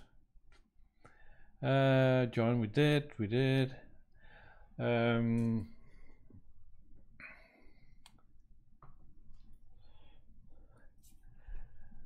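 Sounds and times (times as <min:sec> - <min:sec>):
soft breath: 0:00.9 - 0:01.6, 0:03.9 - 0:04.8, 0:07.1 - 0:08.3, 0:09.4 - 0:12.0.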